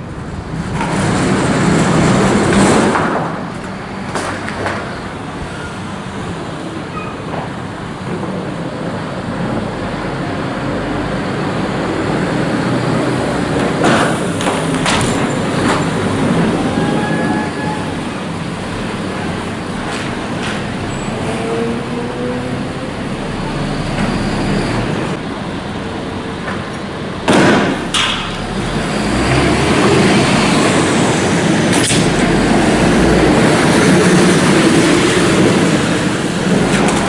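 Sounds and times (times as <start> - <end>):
heavy vehicle engine rumbling: 0.0 - 37.0
sharp crack: 27.2 - 28.5, 31.7 - 32.4
loud sudden bang: 27.3 - 28.3.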